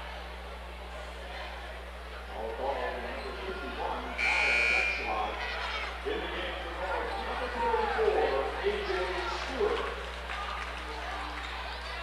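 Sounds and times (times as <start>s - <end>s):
people's voices: 0.0s - 12.0s
scoreboard buzzer: 4.2s - 5.2s.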